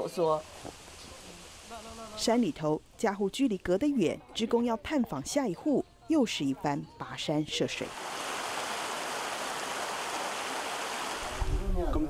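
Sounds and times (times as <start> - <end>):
stream rushing over rocks: 7.9 - 11.5.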